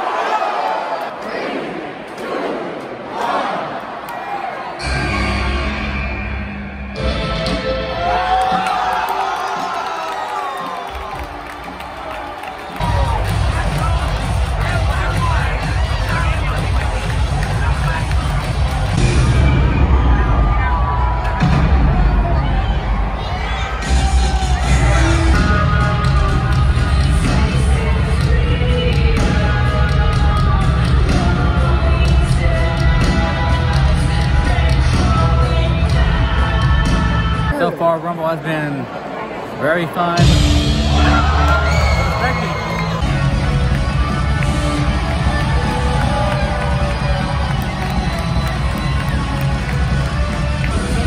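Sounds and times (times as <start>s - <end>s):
large crowd cheering: 0.0s - 26.5s, 38.4s - 51.0s
entrance music over loudspeakers: 4.8s - 51.0s.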